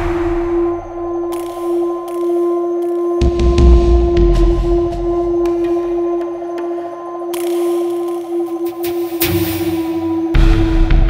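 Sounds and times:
tense held drone music: 0:00.0 - 0:11.0.

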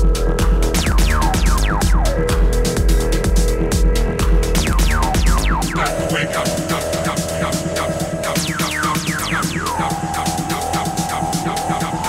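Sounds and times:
electronic dance music: 0:00.0 - 0:12.0
pulsing beat: 0:00.0 - 0:12.0
held synth tone: 0:04.6 - 0:11.9.

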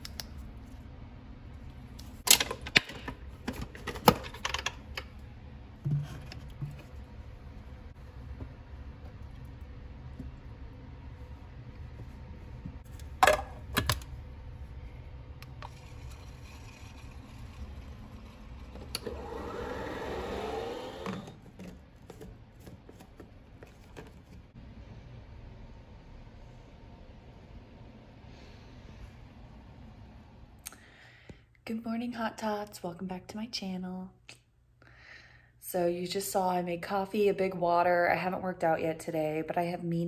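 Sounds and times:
milk frother humming: 0:15.4 - 0:24.1.

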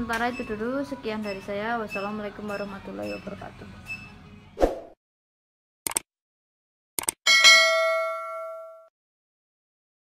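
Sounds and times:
quick clicks: 0:05.9 - 0:06.1, 0:07.0 - 0:07.2
bell ding: 0:07.3 - 0:08.9.

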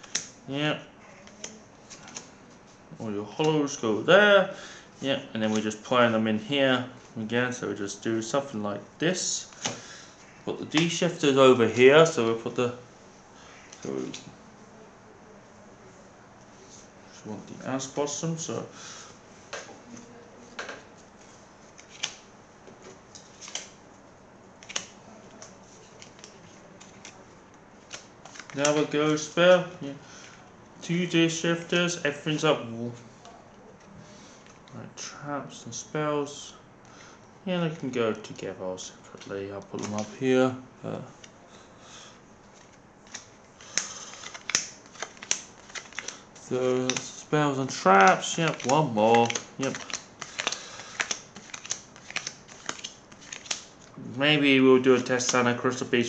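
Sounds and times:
cards rustling: 0:01.2 - 0:03.8, 0:09.2 - 0:12.5, 0:19.5 - 0:23.8, 0:24.6 - 0:32.6, 0:36.9 - 0:40.3, 0:42.4 - 0:53.9, 0:54.6 - 0:56.0
cards rustling and tapping on table: 0:21.8 - 0:23.8, 0:42.6 - 0:46.2, 0:47.7 - 0:53.7.

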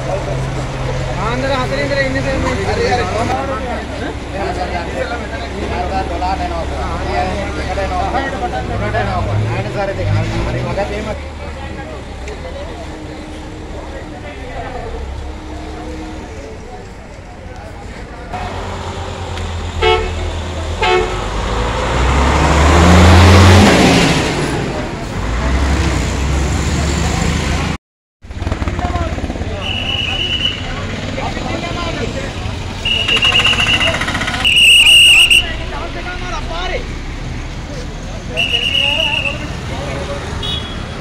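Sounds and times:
crowd voices: 0:00.0 - 0:19.1, 0:28.5 - 0:41.0
street traffic: 0:00.0 - 0:41.0
large vehicle engine revving past: 0:18.4 - 0:29.5
car horn honking: 0:19.8 - 0:21.4, 0:32.8 - 0:35.7, 0:40.4 - 0:41.0.

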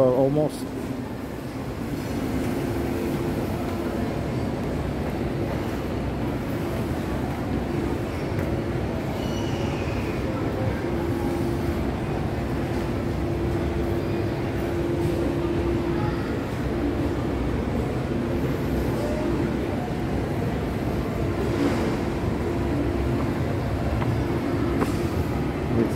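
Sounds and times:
shopping mall ambient rumble: 0:00.0 - 0:25.9
steady hum: 0:00.0 - 0:25.9.

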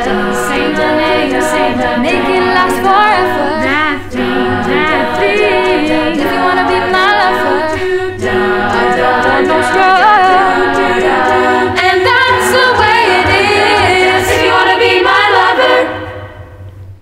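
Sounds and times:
a cappella group singing in harmony: 0:00.0 - 0:16.7.

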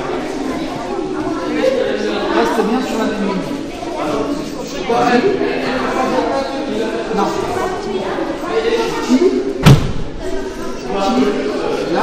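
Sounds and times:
children's voices: 0:00.0 - 0:12.0
heavy thud on mat: 0:09.6 - 0:10.1.

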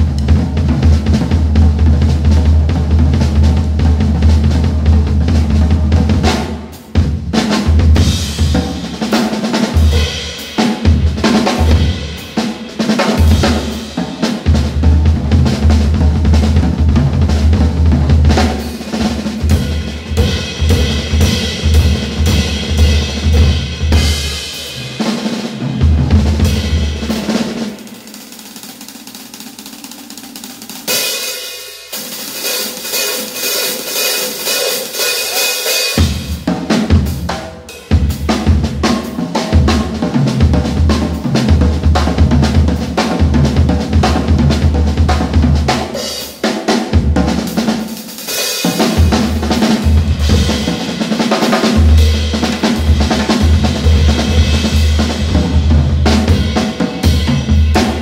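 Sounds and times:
jazz drum kit solo: 0:00.0 - 0:58.0.

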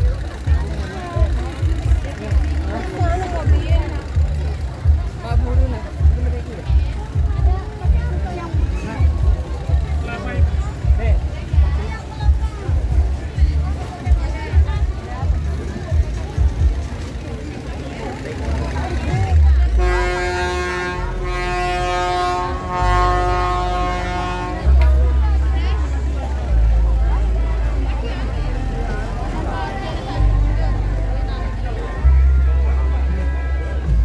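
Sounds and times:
bass-heavy music: 0:00.0 - 0:34.0
crowd chatter: 0:00.0 - 0:34.0
horn blowing long note: 0:19.7 - 0:25.1.

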